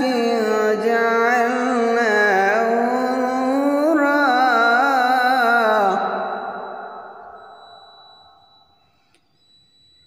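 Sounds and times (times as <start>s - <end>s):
echo of man chanting recitation: 0.0s - 7.3s.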